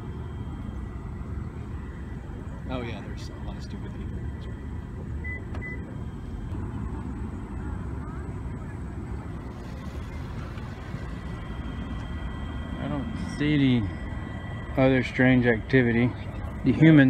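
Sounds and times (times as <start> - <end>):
low outdoor rumble: 0.0 - 17.0.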